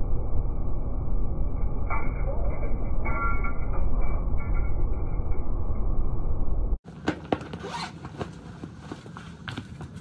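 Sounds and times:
zipper being pulled open: 0:07.5 - 0:08.1.

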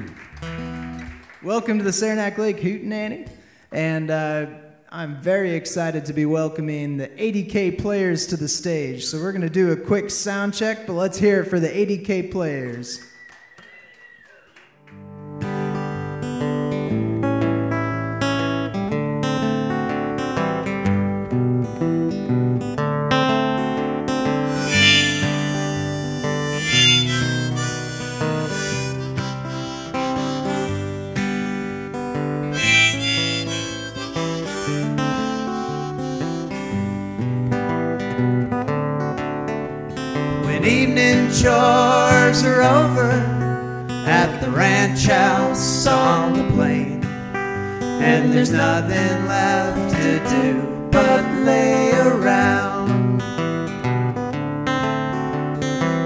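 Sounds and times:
strummed guitars: 0:00.0 - 0:02.2, 0:14.9 - 0:56.0
harmonica: 0:24.4 - 0:38.0, 0:47.3 - 0:49.3.

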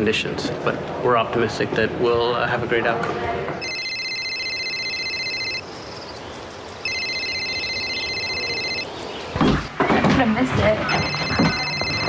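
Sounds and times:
telephone electronic trilling ring: 0:03.6 - 0:05.6, 0:06.8 - 0:08.9, 0:10.8 - 0:12.0.

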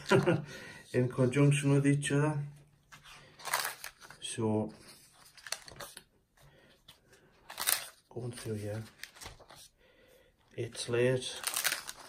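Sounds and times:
paper pages flipping: 0:00.0 - 0:00.4, 0:02.8 - 0:09.7, 0:10.8 - 0:12.0.

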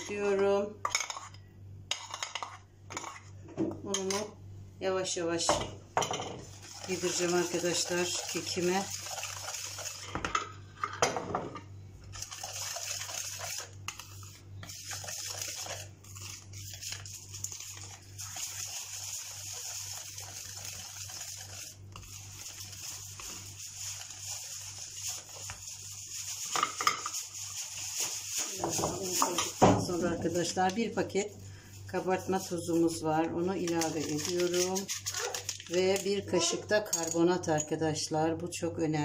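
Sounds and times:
whisk beating batter in bowl: 0:06.4 - 0:10.4, 0:12.1 - 0:36.4.

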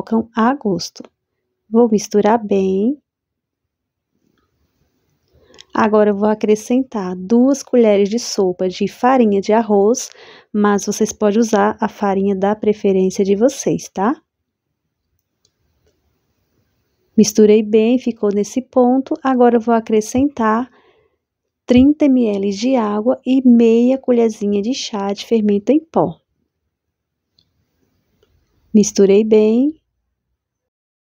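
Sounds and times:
woman's voice: 0:00.0 - 0:01.1, 0:01.7 - 0:03.0, 0:05.6 - 0:14.2, 0:17.2 - 0:20.7, 0:21.7 - 0:26.2, 0:28.8 - 0:29.8
person speaking: 0:17.2 - 0:20.7, 0:21.7 - 0:25.9.

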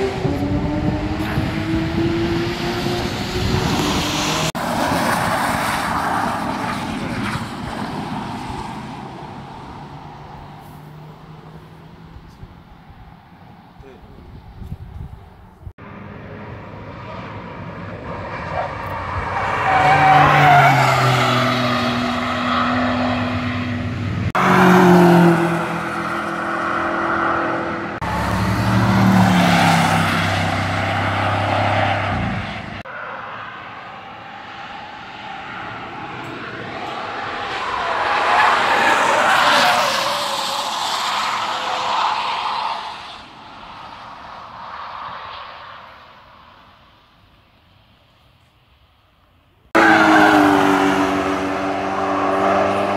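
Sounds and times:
race cars driving past: 0:00.0 - 0:14.0, 0:15.8 - 0:46.4, 0:49.7 - 0:52.9.

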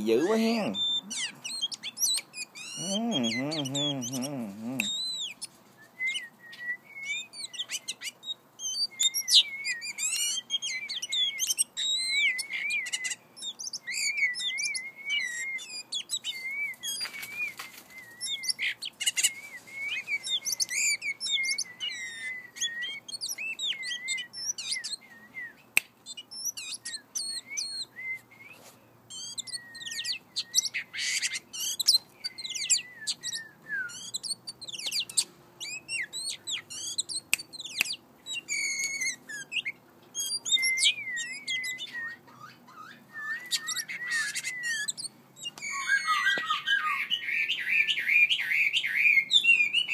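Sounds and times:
magpie-robin calling: 0:00.0 - 0:28.2, 0:29.1 - 0:49.9
rustling: 0:16.7 - 0:18.2.

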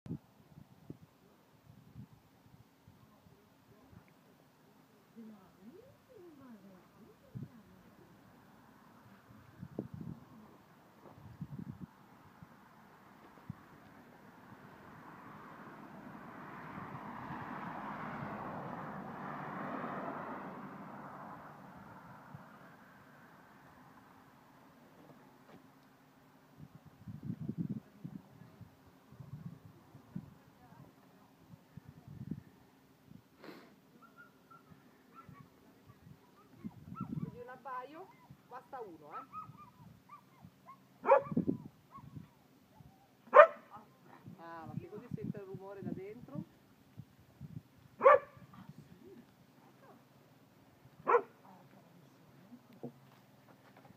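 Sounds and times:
vehicle passing: 0:12.2 - 0:25.4
dog barking: 0:34.0 - 0:37.4, 0:39.1 - 0:42.2, 0:43.3 - 0:43.7, 0:48.0 - 0:48.5, 0:51.0 - 0:51.4.

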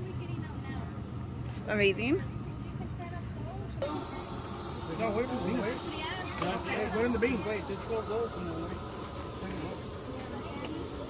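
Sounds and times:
faint voices talking: 0:00.0 - 0:11.0
steady high hiss: 0:03.5 - 0:11.0.

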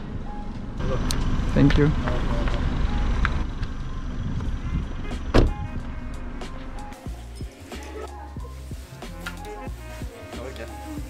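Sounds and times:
steady low rumble: 0:00.0 - 0:07.3
car door shutting: 0:04.7 - 0:05.9.

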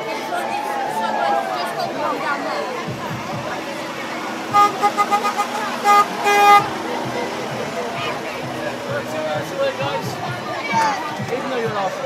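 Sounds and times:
crowd chatter: 0:00.0 - 0:12.0
vehicle horn honking: 0:04.5 - 0:07.0.

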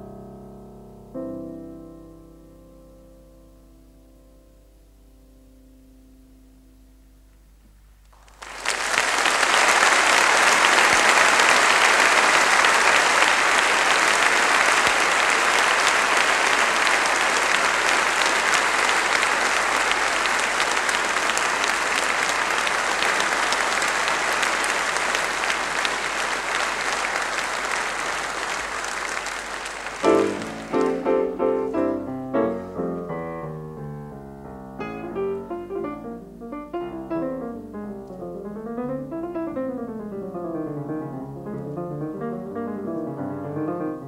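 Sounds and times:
solo piano playing: 0:00.0 - 0:07.6, 0:30.0 - 0:44.0
audience applauding: 0:08.2 - 0:33.2, 0:34.8 - 0:36.1.

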